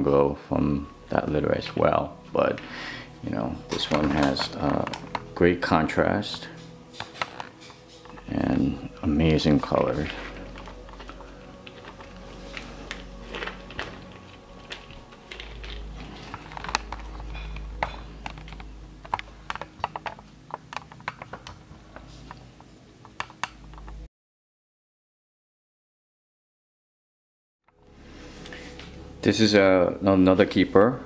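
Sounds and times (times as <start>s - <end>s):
pebbles clicking and shifting: 2.5s - 24.1s.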